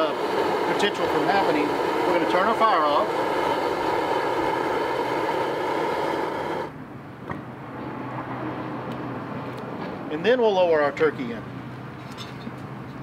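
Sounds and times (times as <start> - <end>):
gas burner roaring: 0.0 - 13.0.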